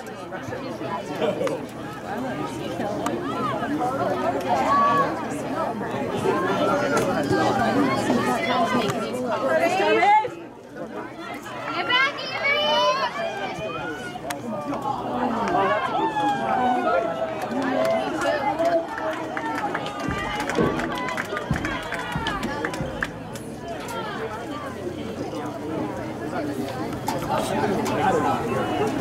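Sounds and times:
people shouting and calling out: 0.0s - 29.0s.

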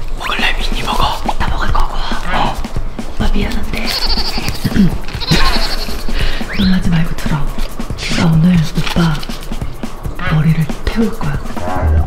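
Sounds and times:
man making bleat-like vocal noises: 3.8s - 6.1s.

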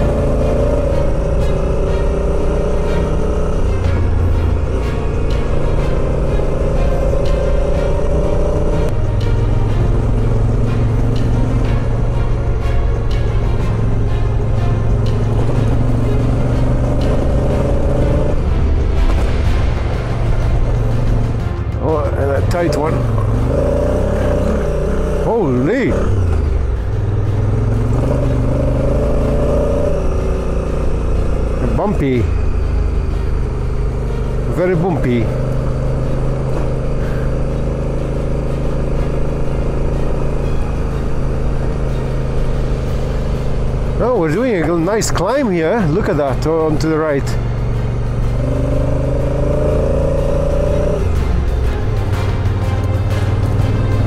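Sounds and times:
motorcycle engine running: 0.0s - 54.0s
wind and road noise: 0.0s - 54.0s.

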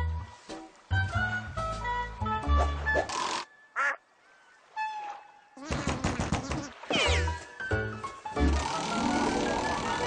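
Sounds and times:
cartoon quack-like squawk: 3.8s - 4.0s, 5.6s - 7.3s.

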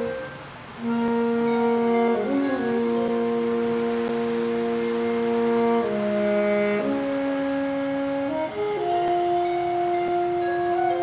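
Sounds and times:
concert band sustained chord: 0.0s - 11.0s.

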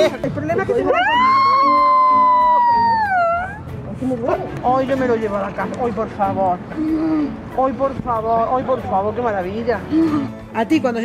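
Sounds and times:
man squealing with delight: 0.8s - 3.6s.

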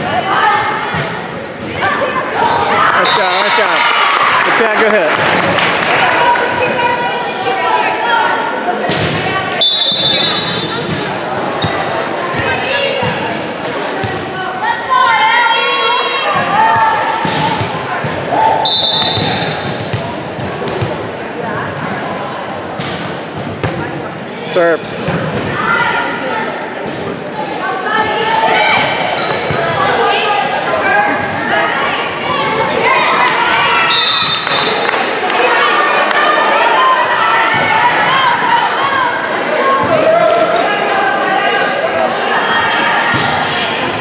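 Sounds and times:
voices chattering and calling out: 0.0s - 44.0s
referee's whistle blasts: 3.0s - 3.8s, 9.6s - 10.8s, 18.6s - 19.7s, 33.8s - 34.8s
volleyball bouncing and struck: 16.4s - 21.0s, 22.8s - 23.9s.

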